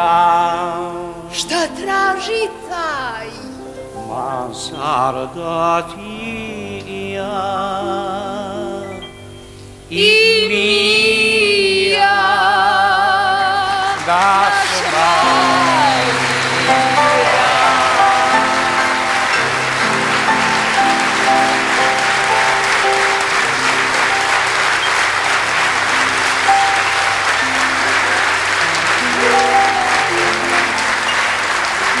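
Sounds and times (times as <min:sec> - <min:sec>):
instrumental music with held notes: 0:06.0 - 0:10.4, 0:14.1 - 0:32.0
audience applauding: 0:13.6 - 0:32.0.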